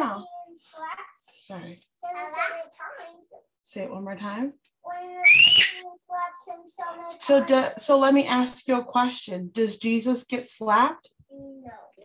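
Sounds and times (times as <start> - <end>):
child's faint drawn-out voice: 11.3 - 12.0.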